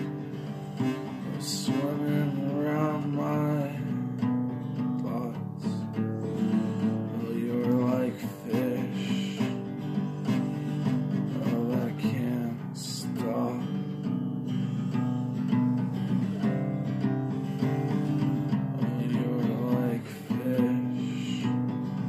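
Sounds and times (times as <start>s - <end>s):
acoustic guitar strumming chords: 0.0s - 22.0s.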